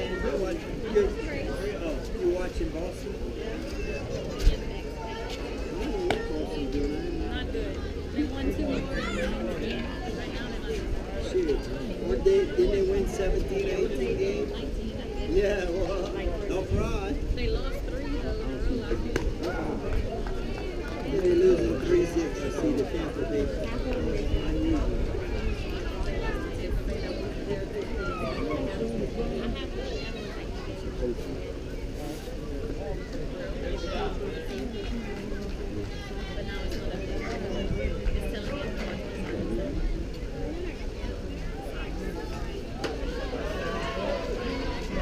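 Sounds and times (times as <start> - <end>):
chatter of voices: 0.0 - 45.0
people talking over one another: 0.0 - 45.0.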